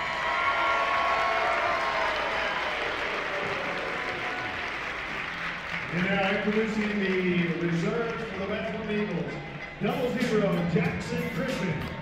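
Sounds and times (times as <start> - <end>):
crowd applauding: 0.0 - 12.0.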